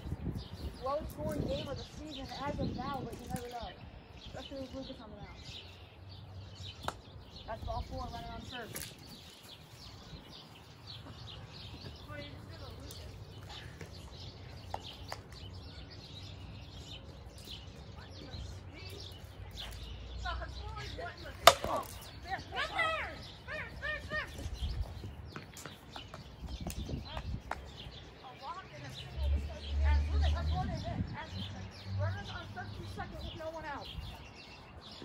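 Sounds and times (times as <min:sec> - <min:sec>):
wind rumble on microphone: 0:00.0 - 0:05.9, 0:06.5 - 0:18.8, 0:23.2 - 0:28.2, 0:28.8 - 0:35.0
plastic bat hitting ball: 0:21.4 - 0:22.0
distant players shouting: 0:21.4 - 0:24.5.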